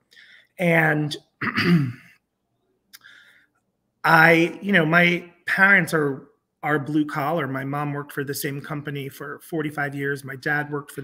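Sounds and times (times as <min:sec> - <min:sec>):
man clearing throat: 0:01.4 - 0:02.2.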